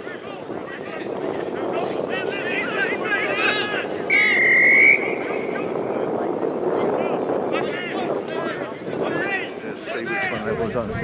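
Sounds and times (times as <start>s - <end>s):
voices chattering and calling out: 0.0s - 11.0s
referee's whistle blast: 4.1s - 5.7s.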